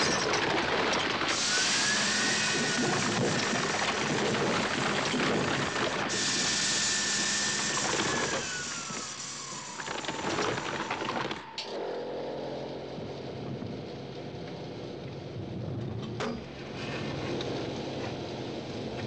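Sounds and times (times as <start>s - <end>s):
metal crunching and grinding: 0.0s - 6.2s
hydraulic whine: 0.0s - 19.0s.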